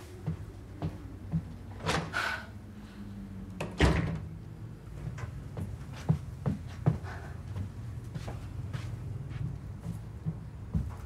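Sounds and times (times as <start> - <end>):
door shutting thud: 3.6 - 4.3.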